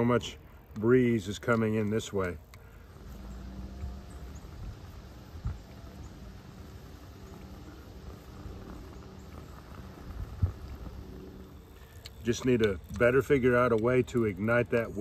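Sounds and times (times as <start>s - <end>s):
wind buffeting microphone: 3.1s - 13.4s.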